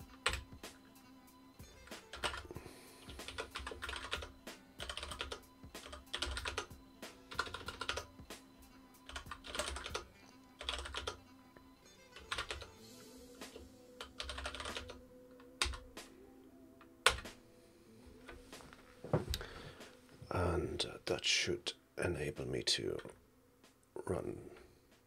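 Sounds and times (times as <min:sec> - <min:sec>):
computer keyboard typing: 0:00.1 - 0:00.5, 0:01.8 - 0:06.7, 0:07.3 - 0:08.1, 0:09.0 - 0:11.2, 0:12.2 - 0:12.7, 0:14.0 - 0:15.9, 0:17.0 - 0:17.3.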